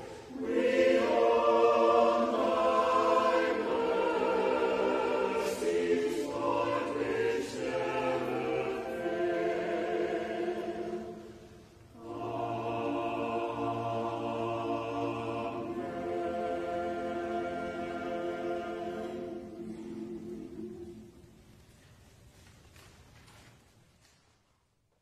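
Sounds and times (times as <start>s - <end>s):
church choir singing: 0.0s - 21.4s.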